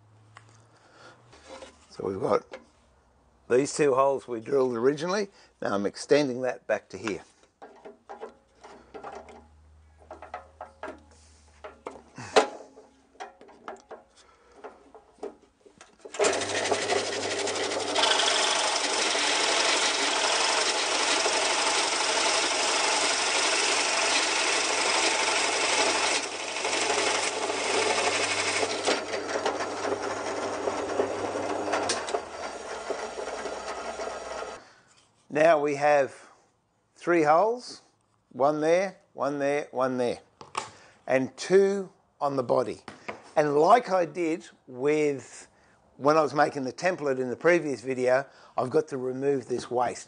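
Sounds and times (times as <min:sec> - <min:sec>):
knocks and clicks of handling: 0:07.1 - 0:16.2
drill press boring into wood: 0:16.1 - 0:34.6.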